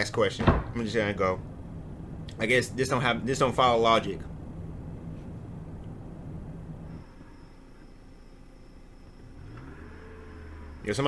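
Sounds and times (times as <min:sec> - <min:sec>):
car engine running: 0:00.7 - 0:11.0
steady high-pitched whine: 0:00.8 - 0:11.0.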